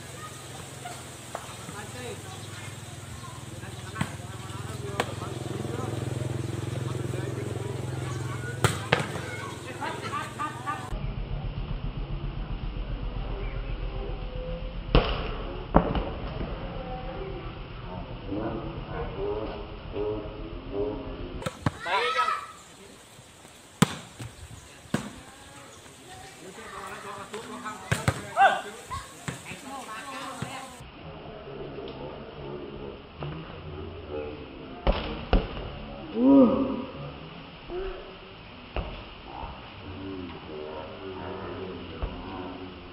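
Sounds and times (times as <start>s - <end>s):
low talk of people: 0.0s - 23.1s, 24.4s - 38.5s
volleyball struck by hand: 8.6s - 9.2s
steady low hum: 9.8s - 21.4s
background voices: 16.3s - 21.9s.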